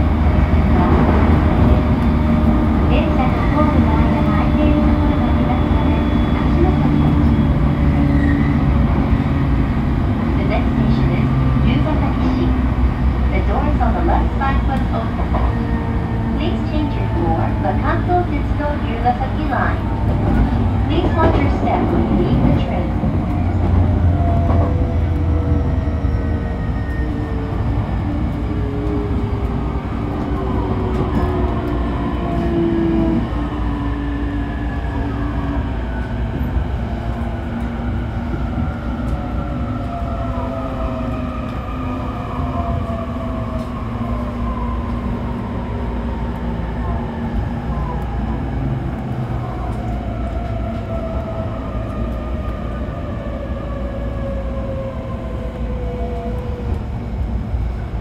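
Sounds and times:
wheels rumbling on rail: 0:00.0 - 0:58.0.

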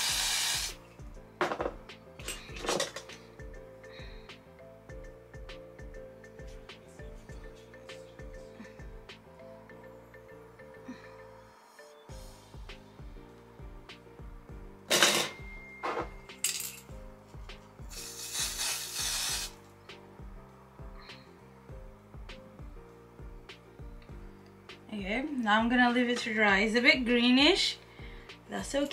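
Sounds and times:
aerosol spray hissing: 0:00.0 - 0:00.8, 0:17.8 - 0:19.6
background music: 0:00.0 - 0:28.9.

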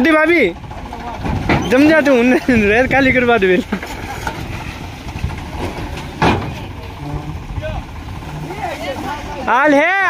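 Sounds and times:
diesel tractor engine running: 0:00.0 - 0:10.0.

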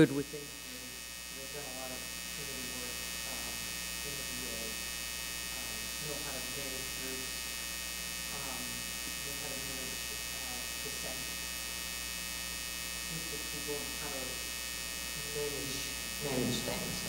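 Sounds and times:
electrical mains hum: 0:00.0 - 0:17.0
faint woman's voice: 0:16.2 - 0:17.0.

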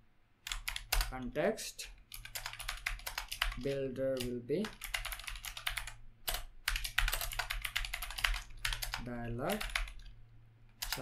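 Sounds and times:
typing on computer keyboard: 0:00.4 - 0:01.1, 0:02.1 - 0:10.1, 0:10.8 - 0:11.0.

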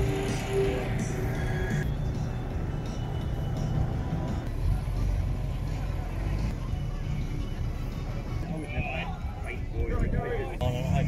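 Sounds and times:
music: 0:00.0 - 0:11.0
voices: 0:04.6 - 0:11.0.

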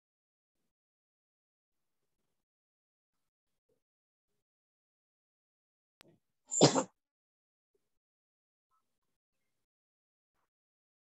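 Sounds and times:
person sneezing: 0:06.5 - 0:06.9.

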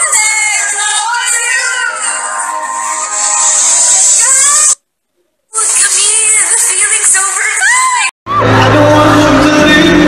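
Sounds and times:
crowd cheering: 0:00.0 - 0:04.7, 0:07.6 - 0:10.0
loud live concert music: 0:07.4 - 0:10.0.

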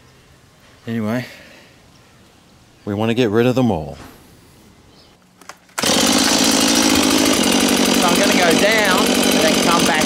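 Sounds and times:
chainsaw running: 0:05.8 - 0:10.0.

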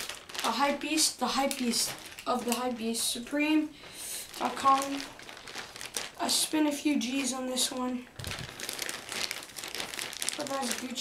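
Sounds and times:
plastic mailer bag crinkling: 0:00.0 - 0:03.2, 0:04.2 - 0:11.0.

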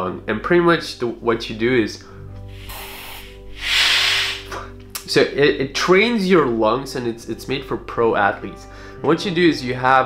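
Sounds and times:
breath rushing through valves: 0:02.5 - 0:04.7.

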